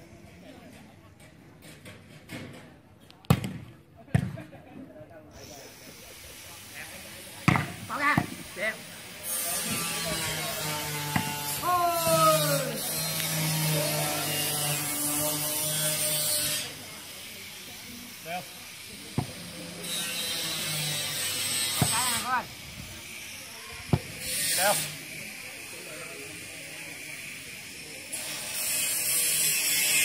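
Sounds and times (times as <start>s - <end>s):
players shouting: 7.5s - 14.8s.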